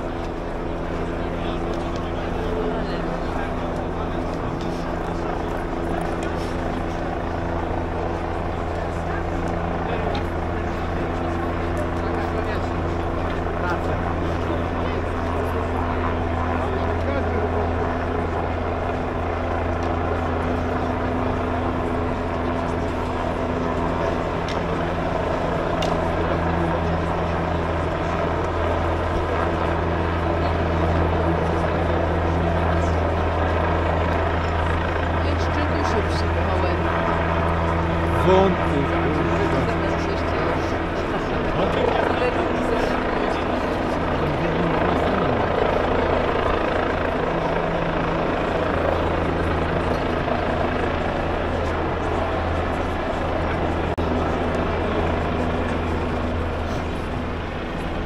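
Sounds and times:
low engine drone: 0.0 - 58.0
murmur of large crowd: 0.0 - 58.0.

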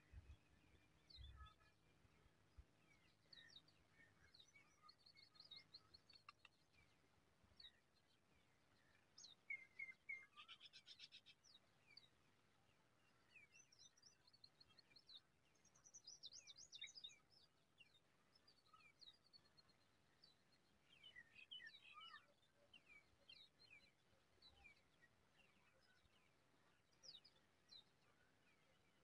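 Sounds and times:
songbirds chirping: 0.0 - 29.0.

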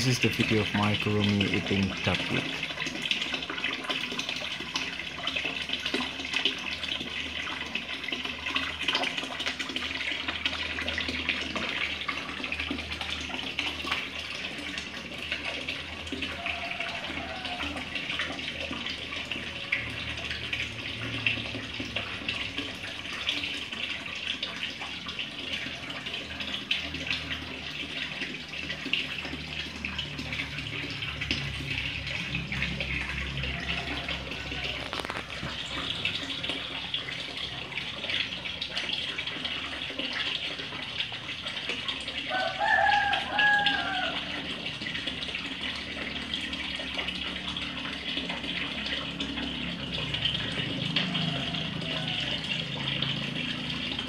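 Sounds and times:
water splashing into pond: 0.0 - 54.0.

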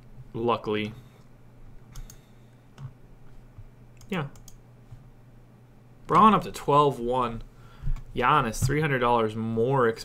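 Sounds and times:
faint room hum: 0.0 - 10.0
computer input clicks: 1.9 - 2.2, 4.0 - 4.6.

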